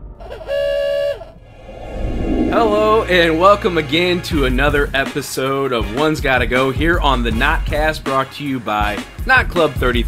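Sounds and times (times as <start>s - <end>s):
horn-like sliding tone: 0.5s - 1.6s.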